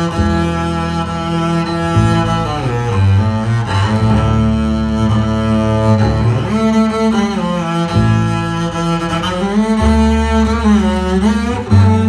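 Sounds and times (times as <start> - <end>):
bowed double bass: 0.0 - 12.0.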